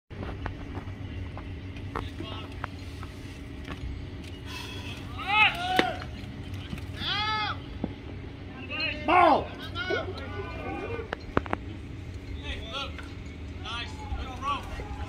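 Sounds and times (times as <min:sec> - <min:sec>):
spectators shouting: 0:05.0 - 0:06.2, 0:07.0 - 0:07.7, 0:08.6 - 0:11.1, 0:13.6 - 0:15.0
murmur of voices: 0:08.4 - 0:15.0.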